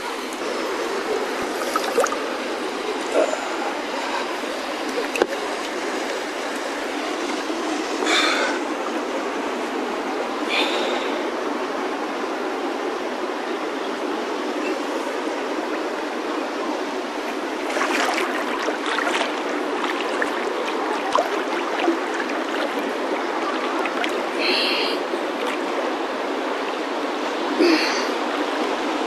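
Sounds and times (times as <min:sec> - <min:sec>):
river water rushing and splashing: 0:00.0 - 0:29.0.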